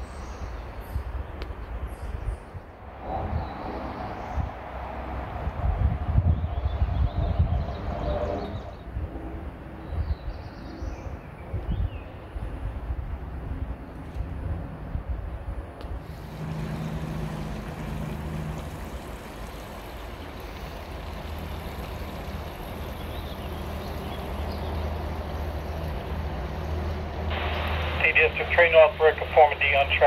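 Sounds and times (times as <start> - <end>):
steady outdoor rushing noise: 0.0 - 30.0
low hum: 12.5 - 30.0.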